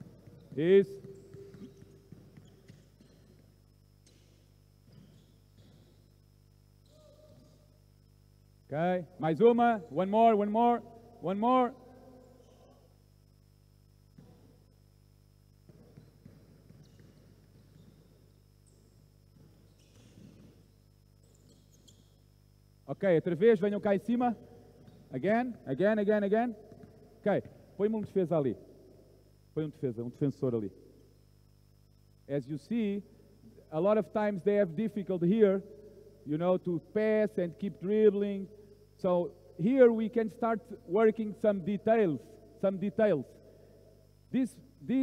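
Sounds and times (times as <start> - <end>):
basketballs dribbled on gym floor: 0.0 - 6.2, 14.1 - 14.6, 15.6 - 22.2, 24.4 - 25.3, 26.2 - 28.3
shoe squeaks: 0.0 - 6.2, 6.8 - 7.6, 12.2 - 12.9, 15.8 - 18.9, 19.5 - 22.3
faint steady tone: 0.0 - 45.0
man speaking: 0.5 - 1.0, 8.7 - 11.8, 22.9 - 24.4, 27.2 - 28.6, 29.6 - 30.8, 32.3 - 33.1, 36.3 - 43.3, 44.3 - 45.0.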